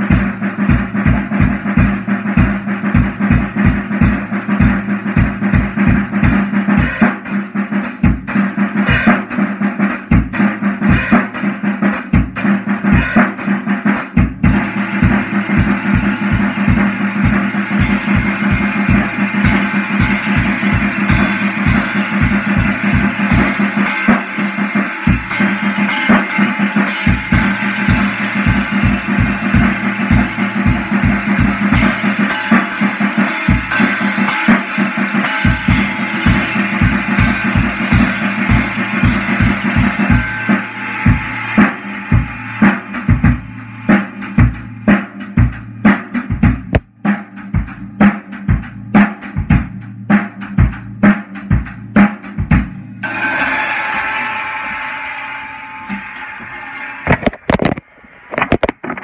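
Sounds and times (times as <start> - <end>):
drum kit with cymbals: 0.0 - 57.9.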